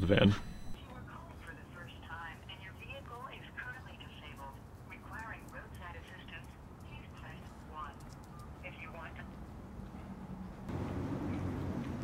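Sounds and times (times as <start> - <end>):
faint speech over a telephone: 0.8 - 9.3.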